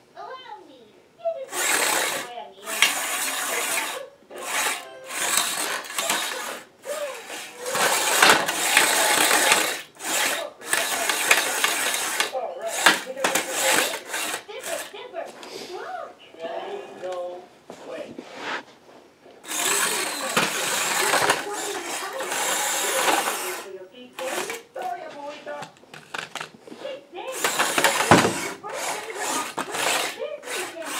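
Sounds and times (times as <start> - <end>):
small robot motors driving on tile: 1.4 - 15.0, 19.4 - 24.9, 27.2 - 30.9.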